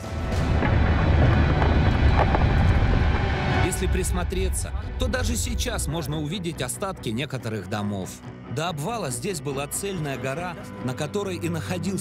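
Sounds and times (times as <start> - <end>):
deep rumble of rockslide: 0.1 - 5.6.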